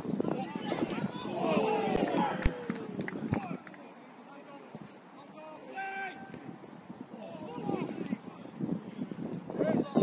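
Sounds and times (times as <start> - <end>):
footballers shouting: 0.4 - 3.5.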